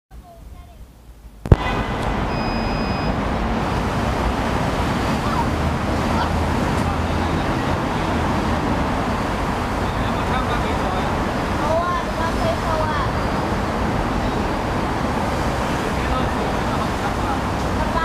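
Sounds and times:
sharp click: 0:01.5 - 0:02.2
brief high tone: 0:01.5 - 0:03.2.

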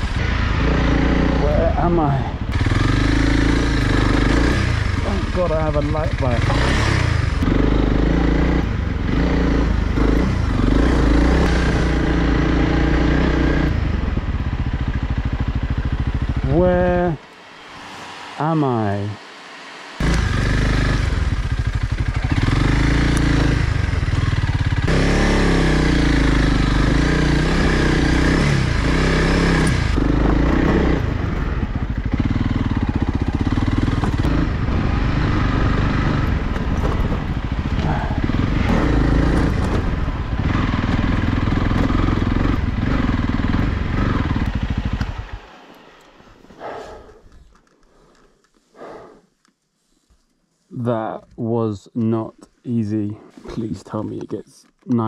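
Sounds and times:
motorcycle engine revving: 0:00.0 - 0:47.6, 0:48.8 - 0:49.1.

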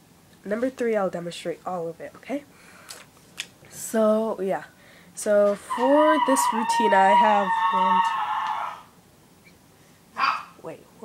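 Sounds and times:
high-pitched held tone: 0:05.6 - 0:08.2.

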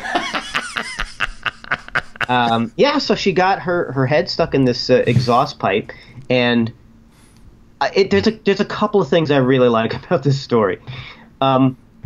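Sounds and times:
person laughing: 0:00.0 - 0:02.7.

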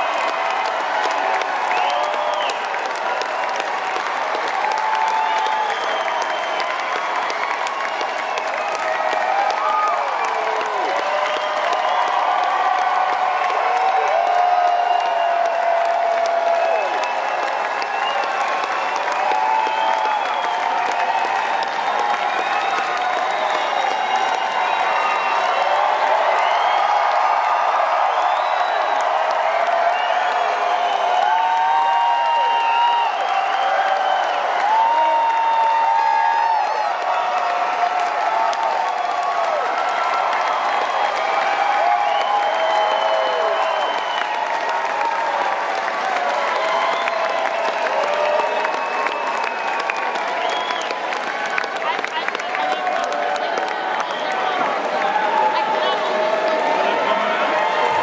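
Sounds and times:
audience cheering and whooping: 0:00.0 - 0:58.0
audience clapping: 0:00.0 - 0:58.0.

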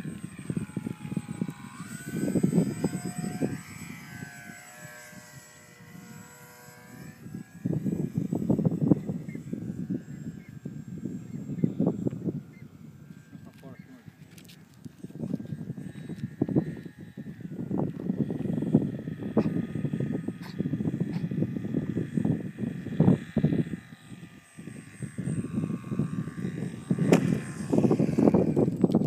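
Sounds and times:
model plane motor whine: 0:00.0 - 0:29.0
wind buffeting microphone: 0:00.0 - 0:29.0.

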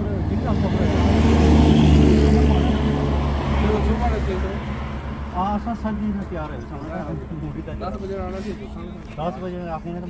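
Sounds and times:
bus driving past: 0:00.0 - 0:08.3.

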